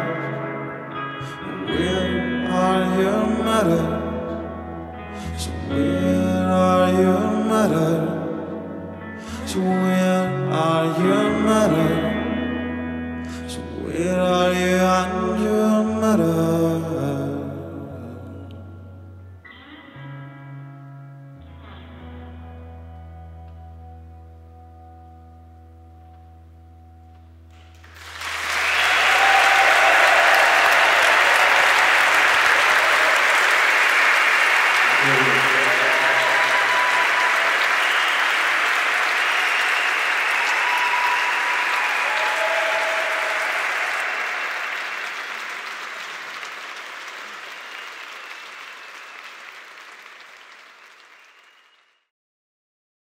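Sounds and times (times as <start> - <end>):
audience applauding and cheering: 27.7 - 51.9.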